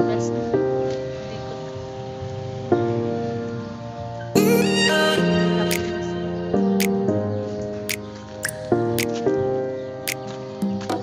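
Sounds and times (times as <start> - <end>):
background music sustained chords: 0.0 - 11.0.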